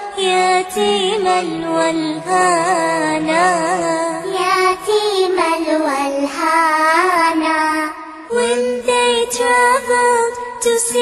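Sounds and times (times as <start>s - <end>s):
person singing ornamented melody: 0.0s - 11.0s.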